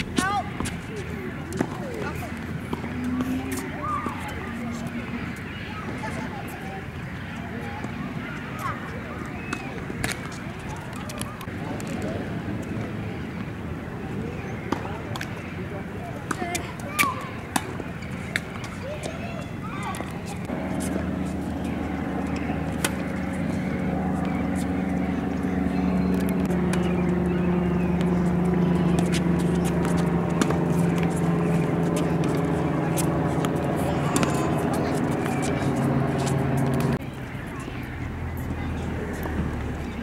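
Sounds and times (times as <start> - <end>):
vehicle engine running: 20.4 - 40.0.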